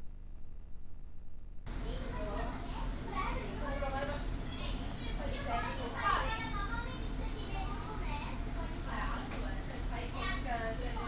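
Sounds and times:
low steady rumble: 0.0 - 11.0
children's voices: 1.7 - 11.0
voices talking: 1.7 - 11.0.

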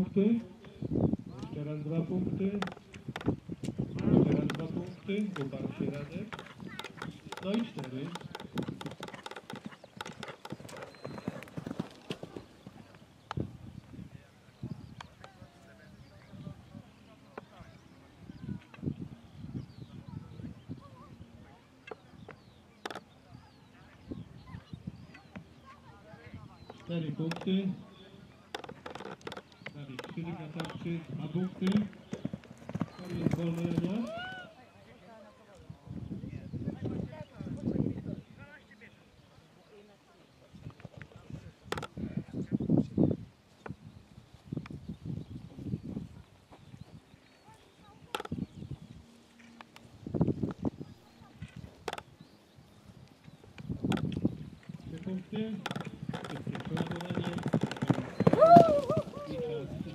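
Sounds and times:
horse galloping on turf: 4.3 - 13.1, 29.4 - 34.2, 55.8 - 59.4.

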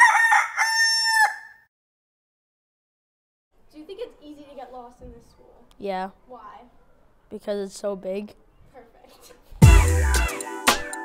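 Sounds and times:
rooster crowing: 0.0 - 1.7.

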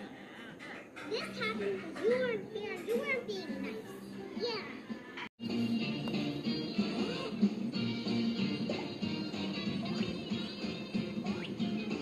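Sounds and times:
background music: 3.2 - 12.0.

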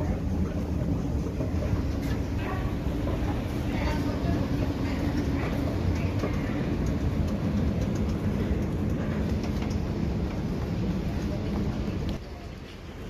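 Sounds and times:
escalator machinery rumble: 0.0 - 13.0.

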